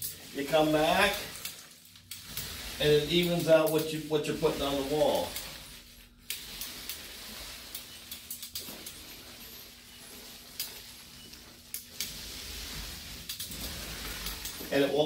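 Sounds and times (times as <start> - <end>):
paint roller rolling on wall: 0.0 - 15.0.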